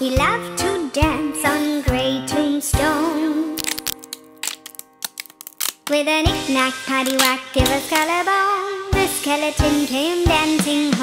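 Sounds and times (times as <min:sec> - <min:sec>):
cartoon bone rattling effect: 0:03.6 - 0:06.0, 0:07.0 - 0:08.1.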